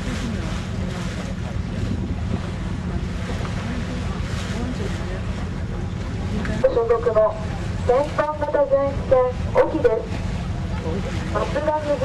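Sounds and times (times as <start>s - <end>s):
sea wash: 0.0s - 12.0s
ship engine drone: 0.0s - 12.0s
wind on microphone: 0.0s - 12.0s.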